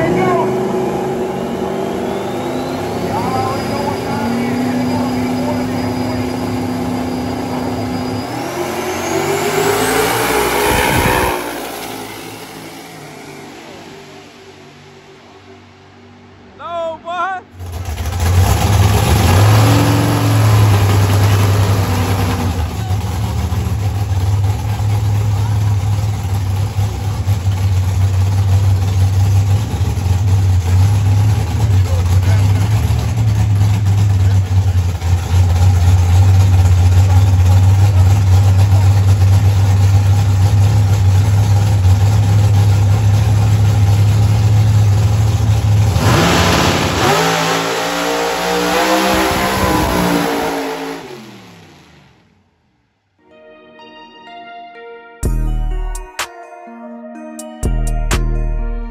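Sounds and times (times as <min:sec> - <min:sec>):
drag car engine roaring: 0:00.0 - 0:16.6, 0:17.4 - 0:52.5.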